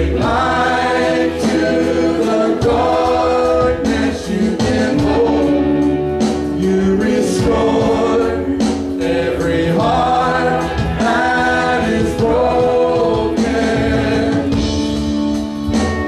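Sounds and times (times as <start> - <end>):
choir singing: 0.0 - 14.9
instrumental accompaniment: 0.0 - 16.0.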